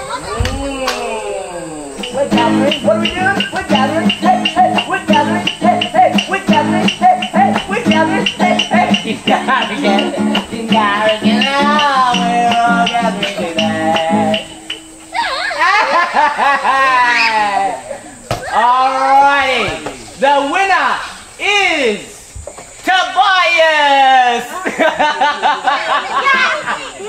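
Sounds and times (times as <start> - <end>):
children shouting and squealing: 0.0 - 19.8, 25.4 - 27.0
person singing: 0.6 - 14.8
acoustic guitar strumming: 2.0 - 15.2.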